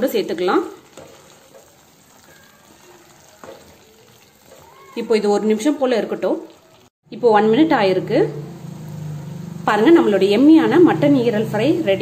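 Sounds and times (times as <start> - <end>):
wooden spatula stirring: 0.0 - 5.8
food sizzling in a pan: 0.0 - 7.0, 8.0 - 12.0.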